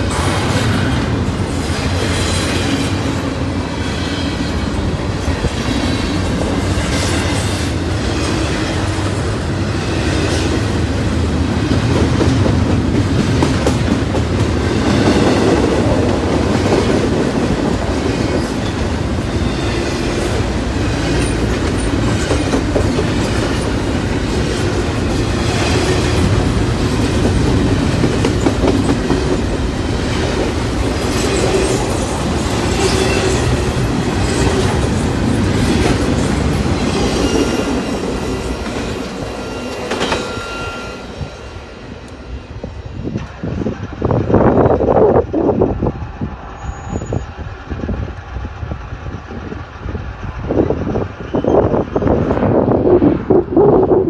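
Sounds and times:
wheels clacking over rail joints: 0.0 - 40.7
freight train rumbling past: 0.0 - 54.0.

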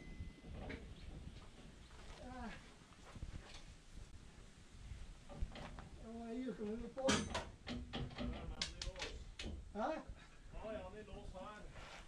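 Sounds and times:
metallic clicks and knocks: 7.0 - 9.6.

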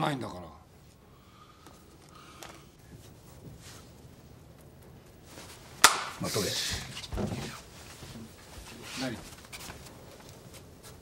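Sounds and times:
sharp smack: 5.8 - 6.2.

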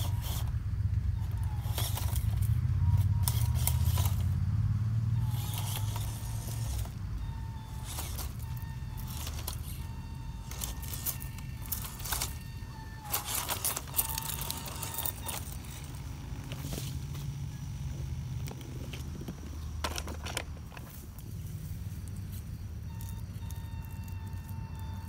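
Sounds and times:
small electric motor whining: 0.0 - 25.0
tyres clattering on stones: 7.6 - 17.3.

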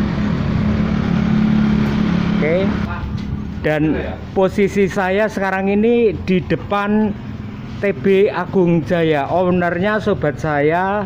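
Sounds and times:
vehicle engine droning: 0.0 - 11.0.

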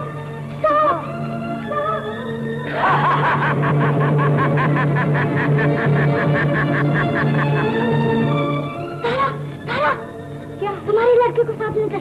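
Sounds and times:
background music: 0.0 - 12.0
man laughing loudly: 2.7 - 7.8.

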